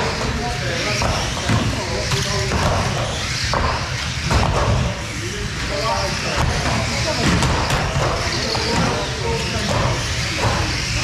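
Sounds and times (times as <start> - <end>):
radio-controlled cars racing: 0.0 - 11.0.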